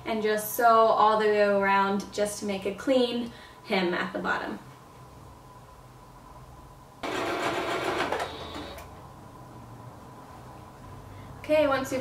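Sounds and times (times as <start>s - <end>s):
electric sewing machine stitching: 7.0s - 8.9s.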